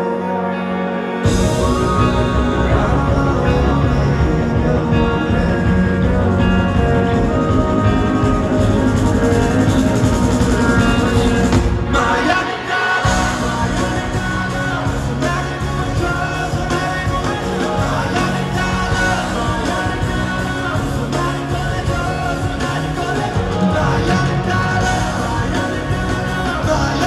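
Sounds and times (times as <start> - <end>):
live rock band through pa: 0.0 - 27.0
man singing: 0.0 - 27.0.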